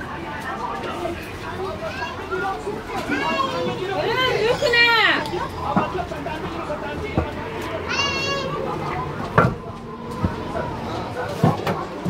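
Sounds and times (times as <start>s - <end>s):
distant voices: 0.0s - 12.0s.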